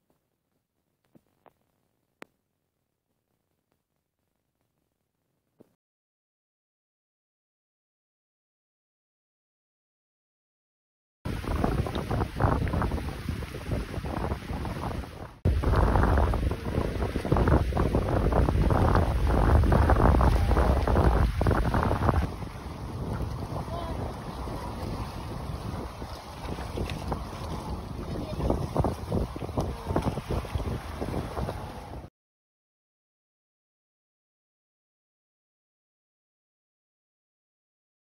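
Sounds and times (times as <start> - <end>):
water splashing at boat hull: 11.3 - 32.1
wind rumbling on microphone: 11.3 - 32.1.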